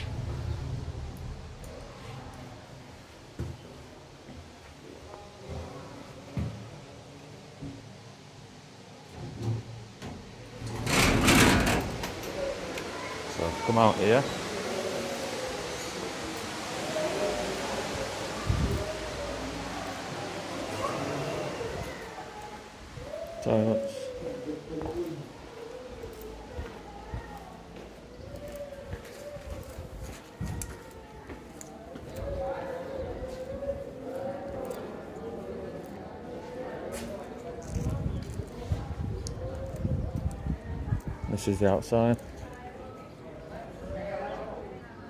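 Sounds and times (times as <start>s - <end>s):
lift running with low hum: 0.0s - 3.3s
metal doors sliding open rattling: 9.3s - 12.9s.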